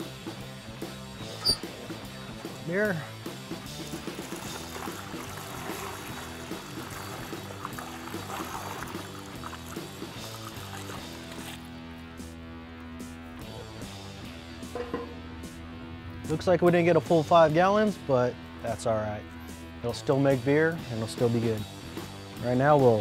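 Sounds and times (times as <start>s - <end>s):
background music: 0.0s - 23.0s
liquid splashing into funnel: 3.8s - 11.7s.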